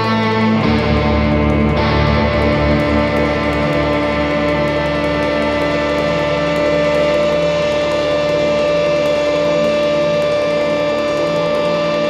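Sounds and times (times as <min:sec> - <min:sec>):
guitar chord ringing: 0:00.0 - 0:12.0.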